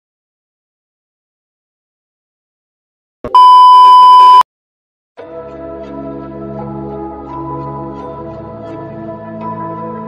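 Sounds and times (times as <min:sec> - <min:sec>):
loud electronic beep: 0:03.3 - 0:04.4.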